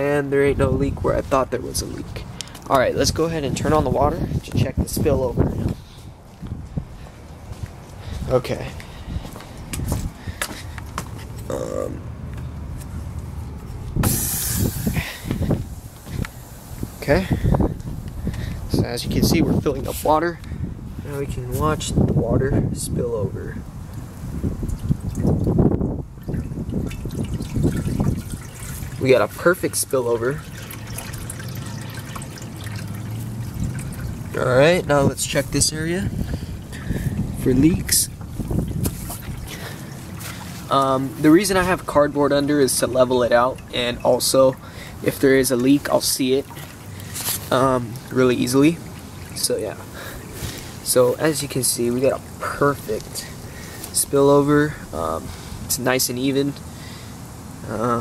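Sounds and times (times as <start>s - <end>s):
wind rumbling on microphone: 0.0s - 11.6s, 12.4s - 44.3s
water hissing through valve: 14.0s - 18.6s, 26.6s - 34.5s
water running and spilling: 14.0s - 18.8s, 24.2s - 58.0s.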